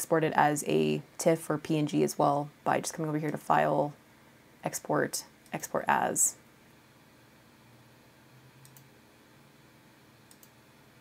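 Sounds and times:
computer mouse click: 8.6 - 8.9, 10.3 - 10.6.

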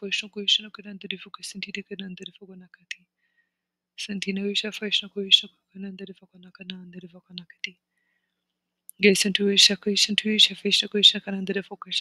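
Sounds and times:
person chanting rapid syllables: 4.0 - 7.7.

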